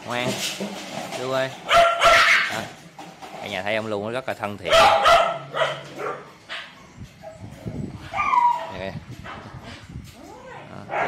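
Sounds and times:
dog whimpering: 0:06.7 - 0:08.8.

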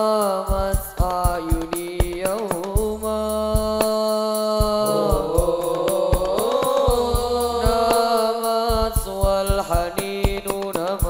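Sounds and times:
boy singing into a microphone: 0:00.0 - 0:11.0
frame drum strokes: 0:04.6 - 0:11.0.

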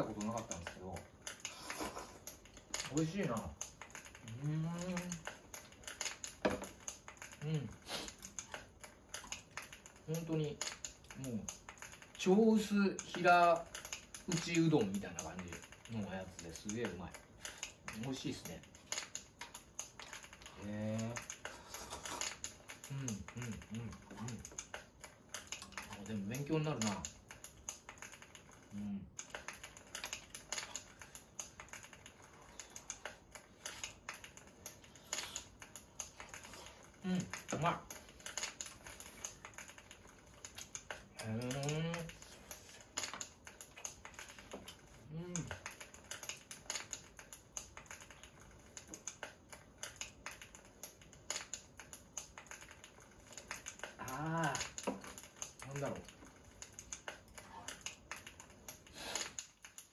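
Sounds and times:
log fire crackling: 0:00.0 - 0:59.9.

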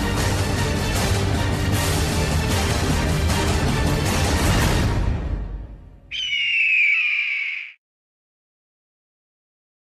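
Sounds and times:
bird of prey screech: 0:06.1 - 0:07.8.

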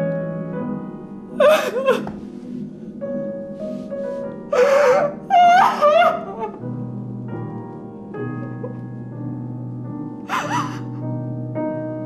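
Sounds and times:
soft piano music: 0:00.0 - 0:12.0
woman sobbing: 0:01.4 - 0:02.2, 0:04.5 - 0:06.7, 0:10.3 - 0:11.0.

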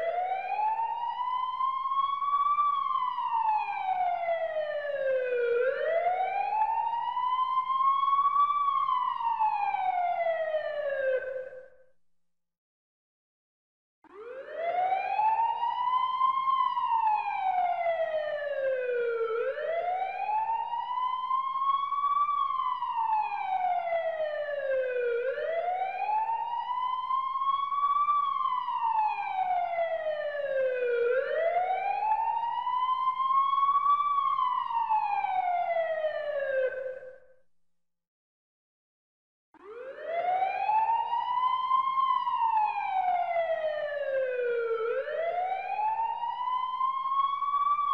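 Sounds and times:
emergency siren wailing: 0:00.0 - 0:11.7, 0:14.1 - 0:37.2, 0:39.6 - 0:47.9.

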